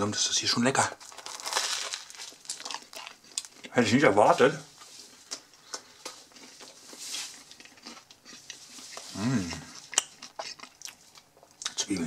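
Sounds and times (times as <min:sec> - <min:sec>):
crisp rustle: 0:01.0 - 0:03.1, 0:06.5 - 0:07.6
person chewing food: 0:01.0 - 0:03.8, 0:04.8 - 0:11.8.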